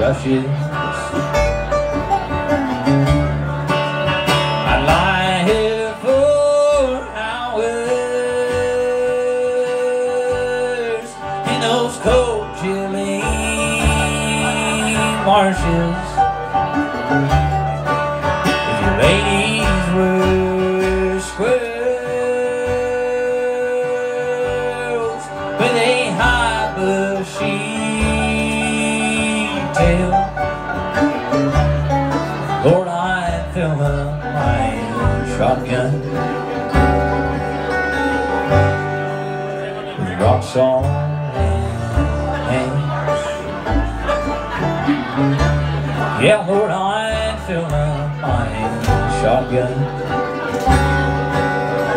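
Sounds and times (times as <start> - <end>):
man singing: 0.0 - 1.4, 4.5 - 16.7, 18.5 - 31.3, 32.3 - 36.7, 39.4 - 43.7, 44.8 - 50.6
acoustic guitar: 0.0 - 51.9
banjo picking: 0.0 - 51.9
bluegrass band playing: 0.0 - 51.9
mandolin: 0.0 - 51.9
upright bass: 0.0 - 51.9.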